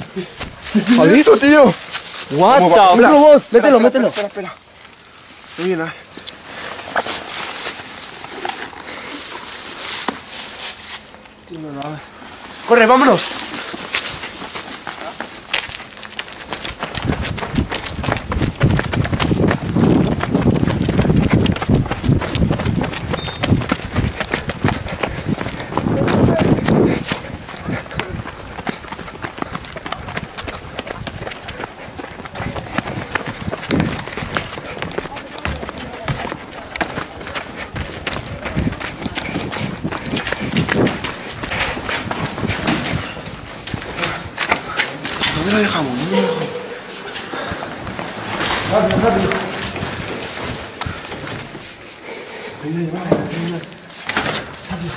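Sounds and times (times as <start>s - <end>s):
voices: 0.0s - 4.9s, 23.1s - 42.5s, 43.2s - 51.0s
running footsteps on pavement: 0.0s - 54.9s
breathing: 8.8s - 9.3s, 47.2s - 47.8s, 52.0s - 52.6s.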